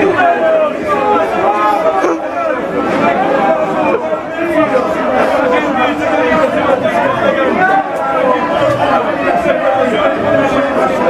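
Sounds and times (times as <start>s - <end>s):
crowd shouting and celebrating: 0.0s - 11.0s.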